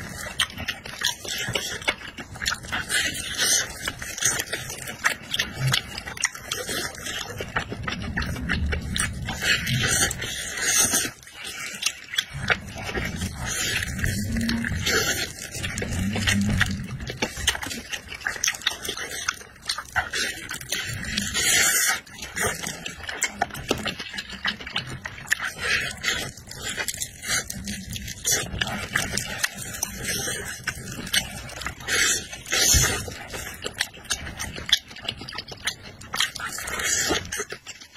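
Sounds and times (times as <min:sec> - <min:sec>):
wet chewing and smacking: 0:00.0 - 0:37.9.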